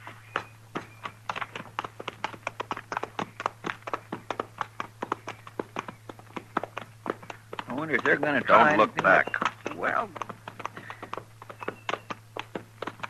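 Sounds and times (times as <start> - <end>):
faint steady hum: 0.0 - 13.0
horse hooves clopping: 0.0 - 13.0.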